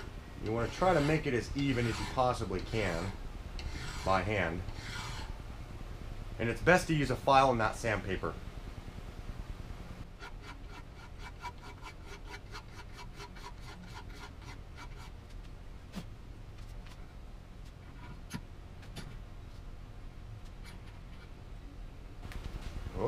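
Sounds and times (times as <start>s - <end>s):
file scraping steel: 0.0s - 5.4s, 10.1s - 15.2s.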